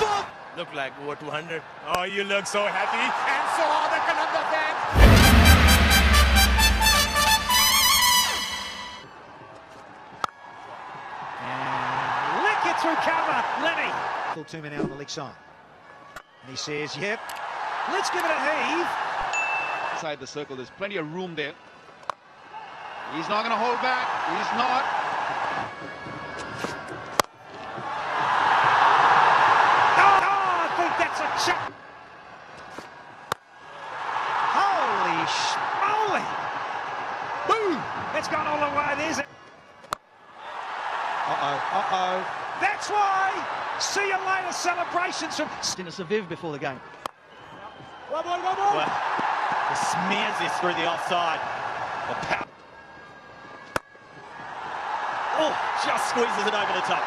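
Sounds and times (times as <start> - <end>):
stadium crowd noise: 0.0 - 57.0.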